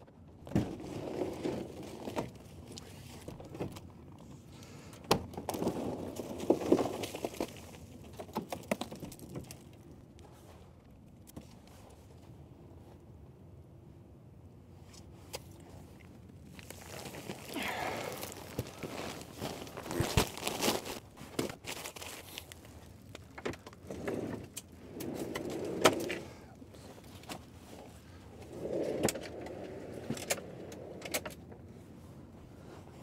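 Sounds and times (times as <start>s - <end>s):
foil insulation rustling: 16.2s - 25.6s
footsteps in snow: 16.6s - 22.7s.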